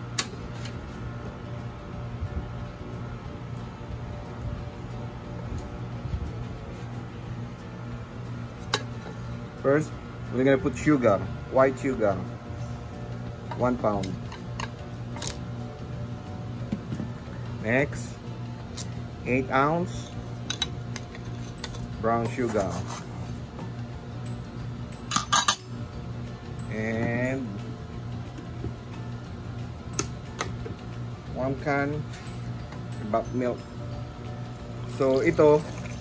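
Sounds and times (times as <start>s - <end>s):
low background music or hum: 0.0s - 36.0s.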